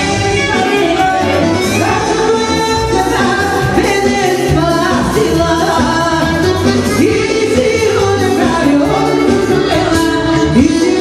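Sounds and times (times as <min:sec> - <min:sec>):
band playing with singer: 0:00.0 - 0:11.0.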